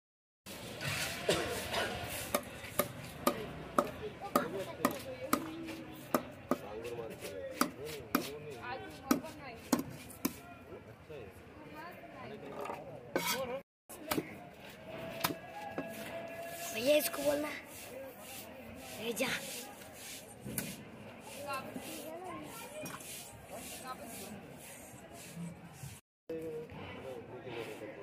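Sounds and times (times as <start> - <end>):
cleaver chopping on wooden block: 2.3 - 5.5.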